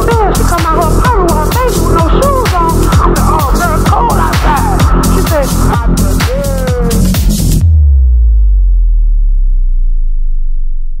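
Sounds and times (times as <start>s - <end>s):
low synth bass note sliding down: 5.8s - 11.0s.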